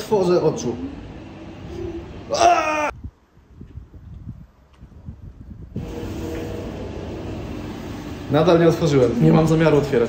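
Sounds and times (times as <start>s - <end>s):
wind buffeting microphone: 2.9s - 7.0s
ride machinery rumbling: 5.7s - 10.0s.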